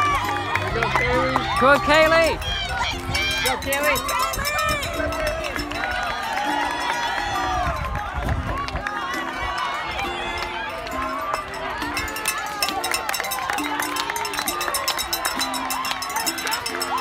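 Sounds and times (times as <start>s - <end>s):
crowd shouting and cheering: 0.0s - 17.0s
music playing: 0.0s - 17.0s.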